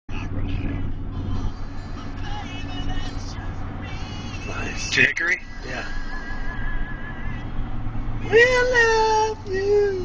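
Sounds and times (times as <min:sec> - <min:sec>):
car road and engine rumble: 0:00.1 - 0:10.0
music: 0:00.8 - 0:07.4.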